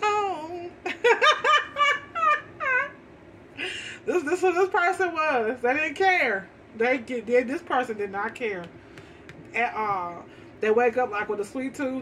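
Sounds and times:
woman laughing: 0.1s - 3.0s, 3.6s - 4.3s.

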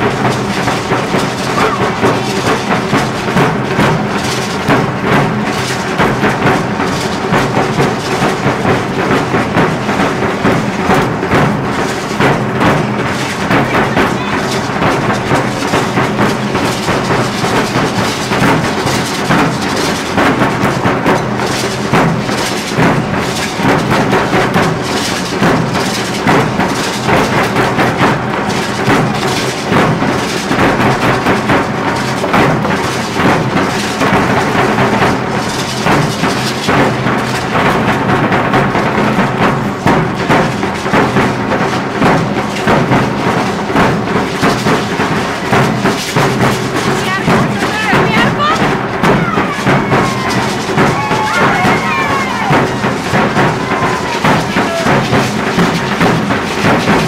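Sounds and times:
marching drums beating: 0.0s - 57.0s.

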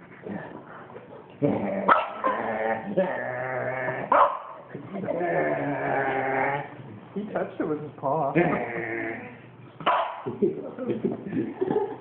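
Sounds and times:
dog moaning: 1.4s - 6.8s, 8.4s - 9.5s.

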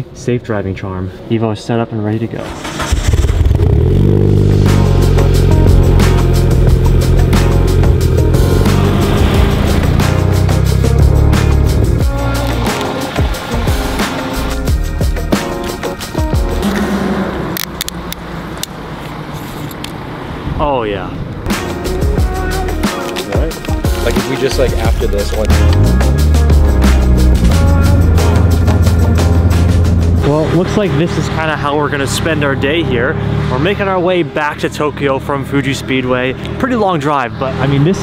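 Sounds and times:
background music: 2.6s - 17.6s, 21.5s - 36.3s
car engine running loud: 2.7s - 14.7s, 16.4s - 19.4s, 24.7s - 38.0s.

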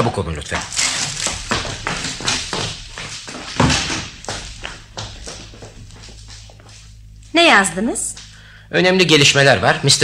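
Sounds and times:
quick footsteps: 0.5s - 7.2s
heavier thump: 1.2s - 5.0s.

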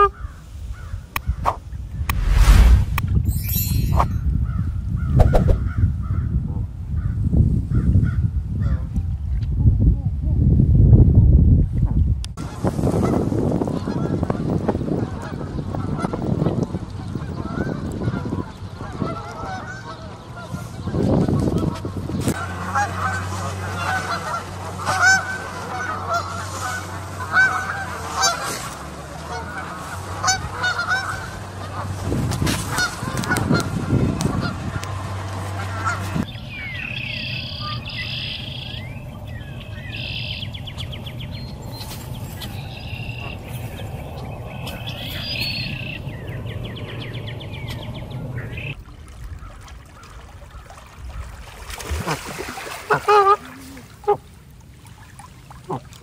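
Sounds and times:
gusty low rumble: 1.7s - 18.7s, 31.7s - 49.0s
geese honking: 17.2s - 21.8s, 22.4s - 32.0s, 32.7s - 41.6s, 42.2s - 48.8s
small birds chirping: 36.2s - 48.8s.

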